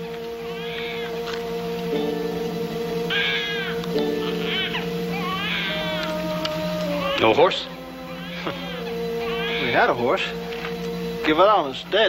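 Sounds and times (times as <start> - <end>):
orchestral score: 0.0 - 12.0
infant crying: 0.4 - 1.2, 3.1 - 10.0.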